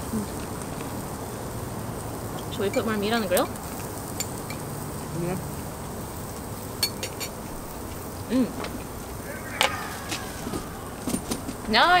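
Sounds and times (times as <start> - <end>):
meat sizzling on a grill: 0.0 - 12.0.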